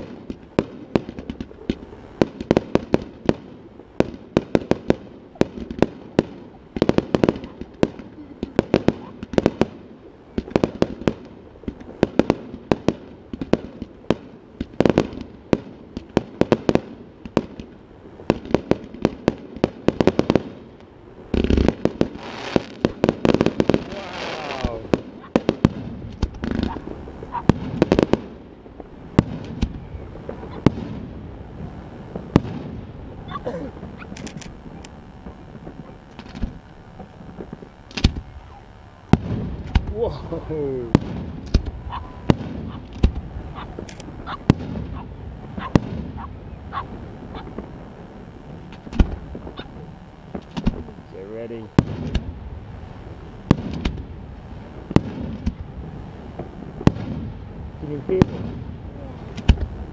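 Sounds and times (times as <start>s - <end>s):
fireworks bursting: 0.0s - 59.9s
fireworks hissing: 0.0s - 59.9s.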